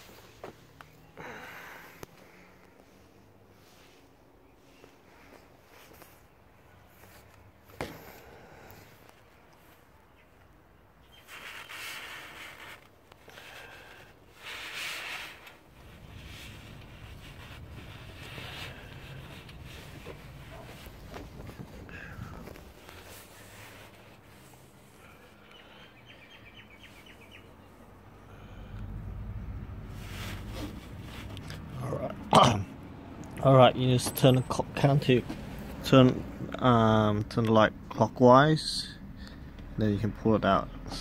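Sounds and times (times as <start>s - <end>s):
rustling and scraping handling noise: 1.9s - 10.0s, 11.0s - 25.4s, 29.8s - 32.2s.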